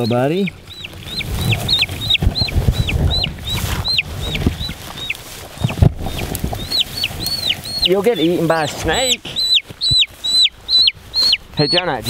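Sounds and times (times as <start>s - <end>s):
chick peeping loudly: 0.0s - 12.0s
hands rustling through grass: 0.0s - 12.0s.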